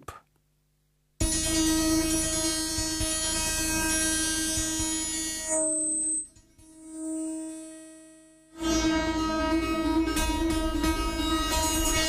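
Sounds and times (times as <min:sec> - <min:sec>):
droning tone: 0:01.2 - 0:12.0.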